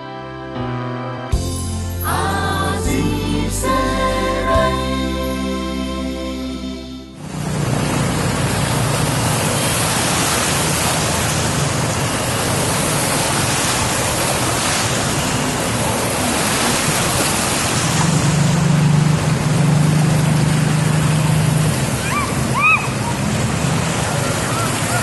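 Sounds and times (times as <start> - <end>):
vehicle engines running: 7.2 - 25.0
splashing water: 7.3 - 25.0.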